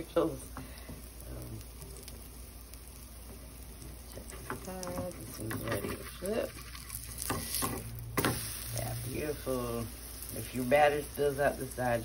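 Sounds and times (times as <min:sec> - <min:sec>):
batter sizzling in a frying pan: 0:00.0 - 0:12.0.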